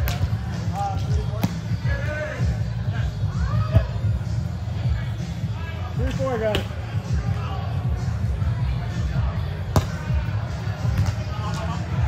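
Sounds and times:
voices in a large hall: 0.0s - 12.0s.

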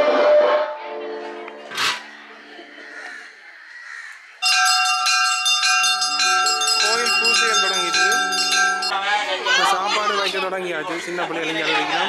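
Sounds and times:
bells ringing: 4.4s - 10.0s.

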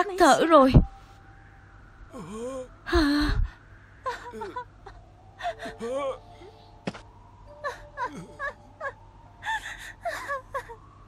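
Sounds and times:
woman sobbing: 2.1s - 6.6s, 7.5s - 11.0s.

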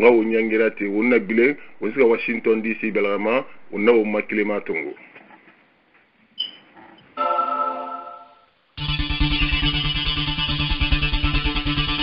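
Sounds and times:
low hiss: 0.0s - 6.6s.

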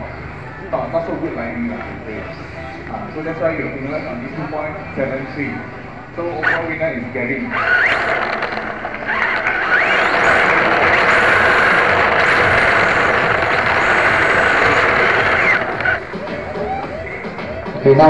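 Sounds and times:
electric motor whine: 7.5s - 17.1s
tyres sliding on tiled floor: 7.6s - 16.0s.

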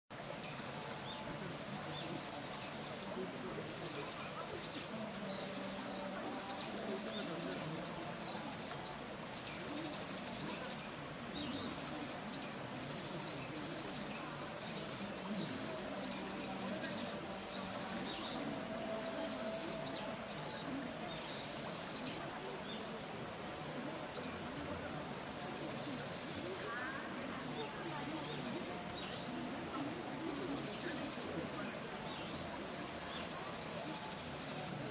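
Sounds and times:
stream running over rocks: 0.1s - 34.9s
small birds chirping: 0.2s - 24.6s, 25.5s - 34.9s.

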